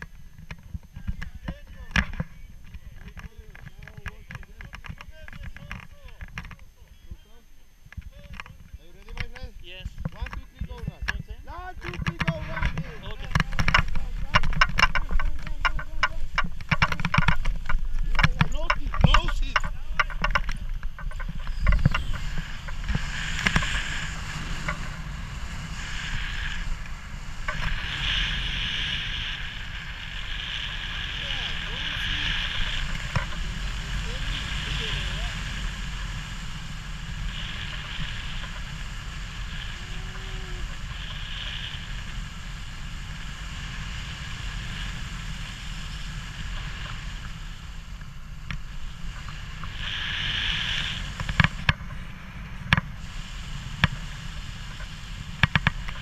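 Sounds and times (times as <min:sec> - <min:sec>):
wind rushing over microphone: 0:07.8 - 0:56.0.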